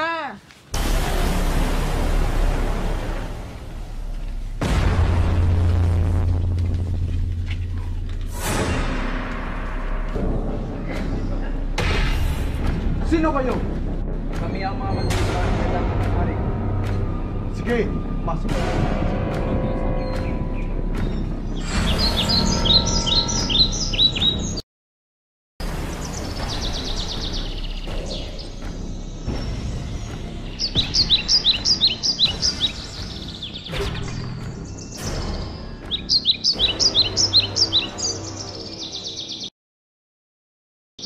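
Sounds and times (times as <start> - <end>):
bird chirping in rapid runs: 21.8 - 24.6, 29.2 - 39.5.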